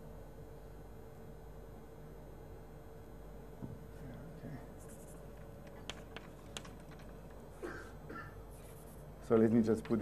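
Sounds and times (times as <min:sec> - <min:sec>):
chalk scratching on blackboard: 0:04.8 - 0:05.3, 0:08.5 - 0:09.1
chalk tapping on board: 0:04.8 - 0:07.1.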